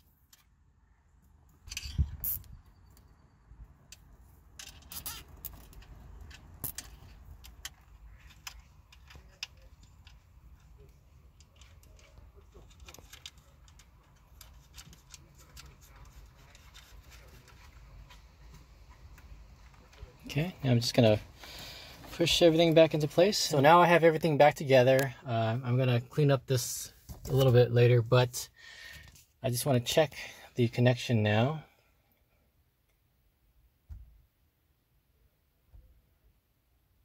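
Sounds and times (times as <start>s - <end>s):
cable connector clicks and rustles: 3.9s - 20.1s.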